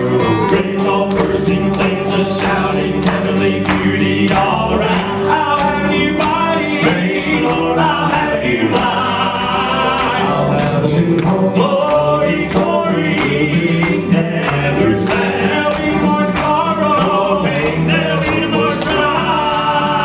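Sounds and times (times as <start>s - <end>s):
instrumental accompaniment with beat: 0.0s - 20.0s
male group singing in harmony: 0.0s - 20.0s.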